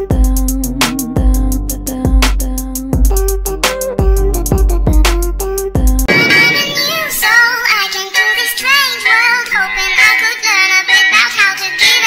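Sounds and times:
bass-heavy hip-hop track: 0.0s - 7.2s
pop song with high vocals: 0.0s - 12.0s.

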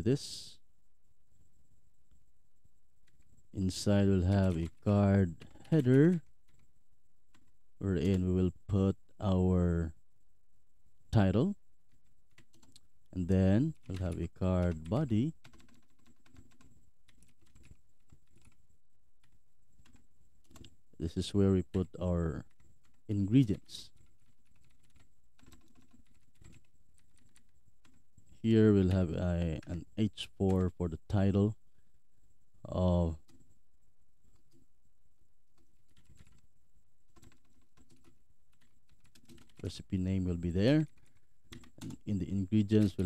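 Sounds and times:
computer keyboard typing: 3.0s - 6.7s, 7.3s - 8.4s, 11.9s - 12.9s, 13.6s - 18.6s, 19.2s - 20.8s, 22.4s - 28.0s, 33.2s - 33.5s, 35.5s - 36.4s, 37.1s - 39.8s, 40.8s - 43.0s.

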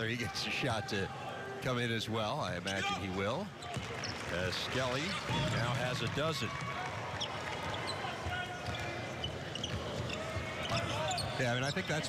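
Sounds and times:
sneaker squeaks: 2.6s - 4.3s, 7.1s - 12.0s
basketball bouncing on court: 6.5s - 11.6s.

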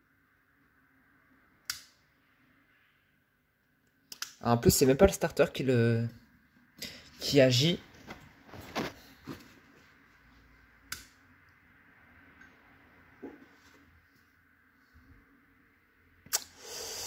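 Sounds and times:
fluorescent light ballast hum: 0.0s - 5.6s, 10.7s - 13.4s
short hissing burst: 16.3s - 17.0s.

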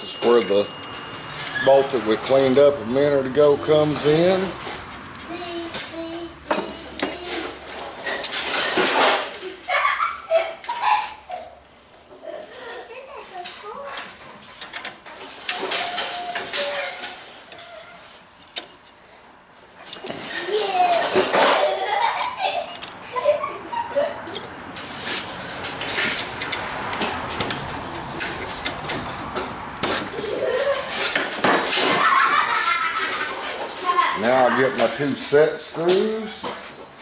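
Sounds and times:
wrench clinking on bolt: 0.0s - 2.0s.

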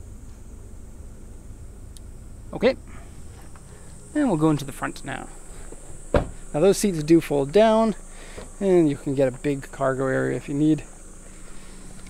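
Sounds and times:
high-pitched hiss: 0.0s - 12.0s
low background rumble: 0.0s - 12.0s.

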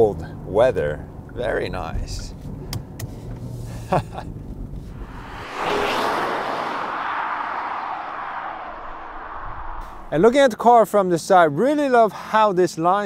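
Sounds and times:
car engine and road rumble: 0.0s - 10.5s
car passing close: 4.6s - 10.3s.

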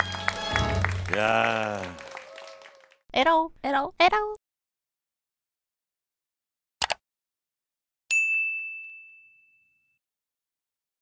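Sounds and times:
bell ding: 8.1s - 10.0s.

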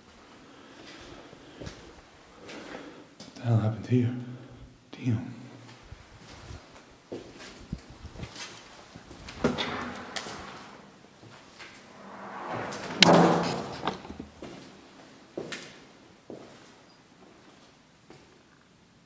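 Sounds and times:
door creaking and banging: 9.4s - 10.8s, 11.9s - 14.4s.

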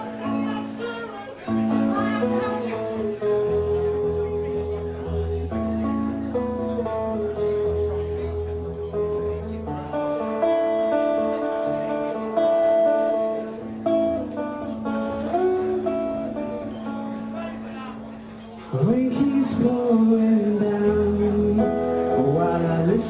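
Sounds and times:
acoustic guitar chords through pa: 0.0s - 23.0s.

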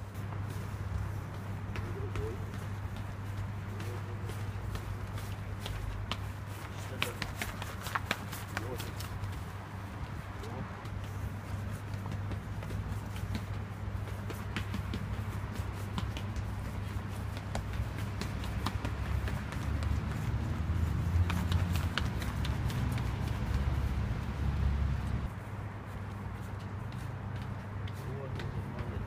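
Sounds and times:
running footsteps on stone stairs: 0.0s - 24.4s, 25.9s - 29.0s.

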